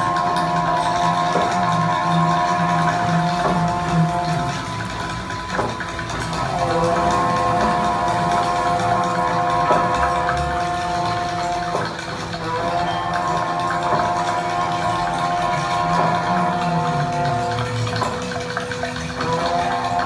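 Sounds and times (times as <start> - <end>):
long held folk notes: 0.0 - 20.0
low drone: 0.0 - 20.0.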